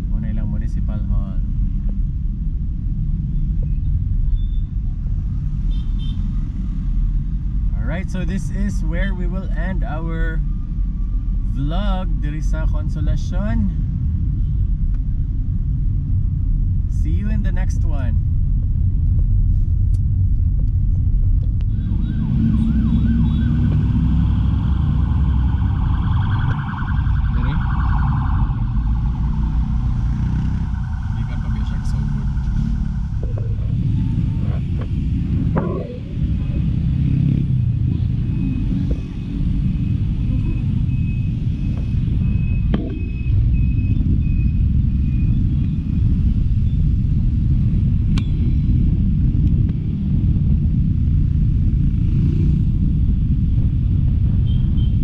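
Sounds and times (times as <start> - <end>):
car interior low rumble: 7.4 - 30.0, 30.6 - 36.7, 38.9 - 51.5
steady higher-pitched tone: 37.6 - 45.5.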